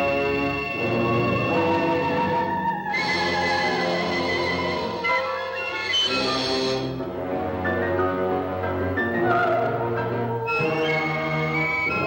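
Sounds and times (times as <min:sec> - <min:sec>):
orchestral horror score chords: 0:00.0 - 0:12.0.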